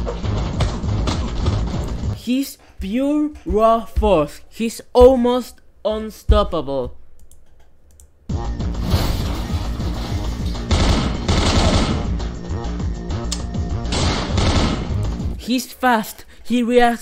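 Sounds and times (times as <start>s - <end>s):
cartoon action music: 8.3s - 15.4s
rapid gunfire: 10.6s - 12.3s, 13.9s - 15.2s.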